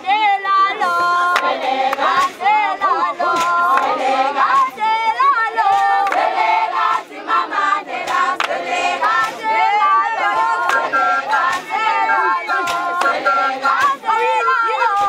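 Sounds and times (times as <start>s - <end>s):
women singing together: 0.0s - 15.0s
sharp hand claps: 1.3s - 2.4s, 3.3s - 4.8s, 5.6s - 7.1s, 8.0s - 9.5s, 10.3s - 14.0s.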